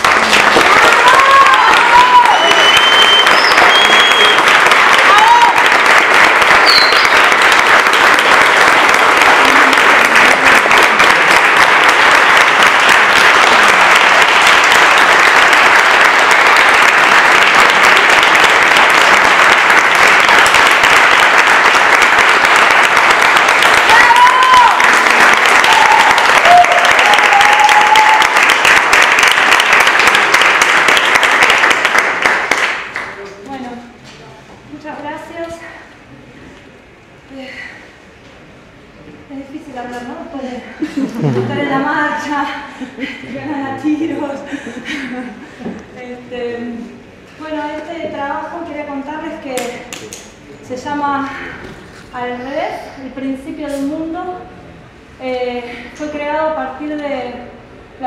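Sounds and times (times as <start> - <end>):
audience clapping: 0.0 - 33.4
shouts and cheers: 0.8 - 3.1, 4.9 - 5.7, 23.8 - 28.5.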